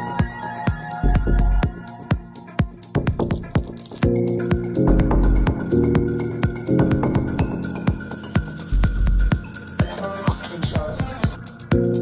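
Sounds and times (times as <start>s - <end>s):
house dance music: 0.0s - 12.0s.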